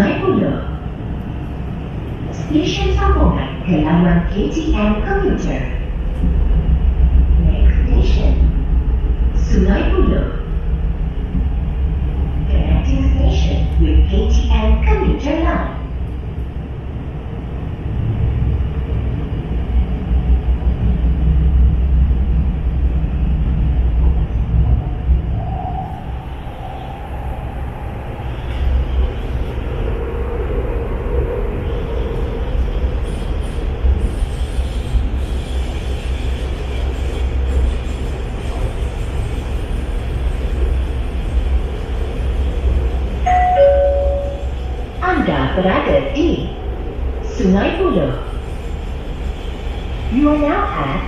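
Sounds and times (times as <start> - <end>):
train wheels rumbling on track: 0.0 - 51.0
two-note chime: 43.3 - 44.4.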